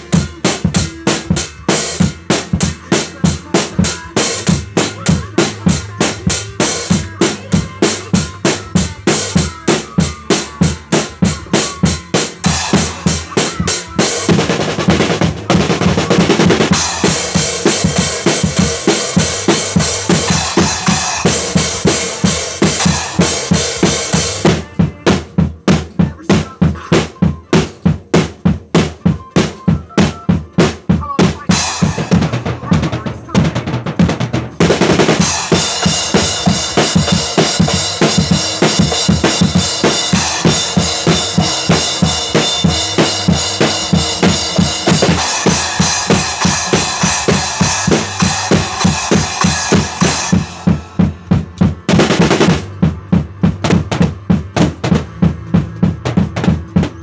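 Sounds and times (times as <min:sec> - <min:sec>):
acoustic drum kit groove: 0:00.0 - 0:57.0
cymbals crashing: 0:34.8 - 0:52.9.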